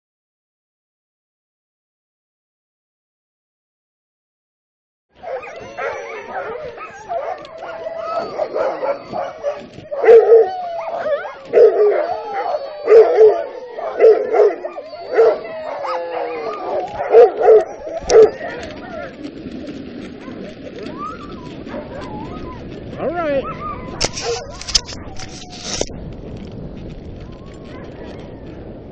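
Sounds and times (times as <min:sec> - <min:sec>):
sled dogs barking and yelping: 0:05.2 - 0:28.9.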